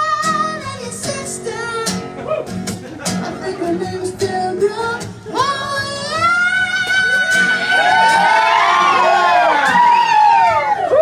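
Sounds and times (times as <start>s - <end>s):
voices whooping in falsetto: 6.8s - 11.0s.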